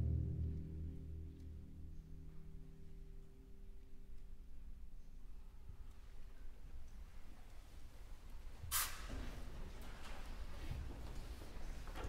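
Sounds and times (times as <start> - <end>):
low rumble: 0.0 - 4.1
sharp hiss of noise: 8.6 - 9.4.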